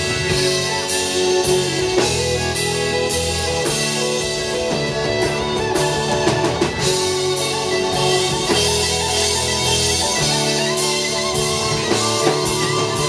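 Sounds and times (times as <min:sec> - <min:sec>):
drum kit with cymbals: 0:00.0 - 0:13.0
electric guitar: 0:00.0 - 0:13.0
fiddle: 0:00.0 - 0:13.0.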